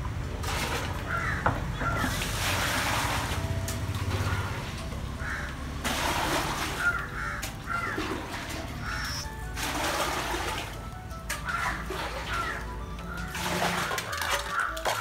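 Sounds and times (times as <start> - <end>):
crows cawing: 1.0 - 2.2, 4.2 - 5.7, 6.7 - 9.3, 11.4 - 15.0
water poured into plastic bucket: 2.1 - 3.5, 5.8 - 7.1, 7.9 - 12.6, 13.2 - 15.0
background music: 2.4 - 15.0.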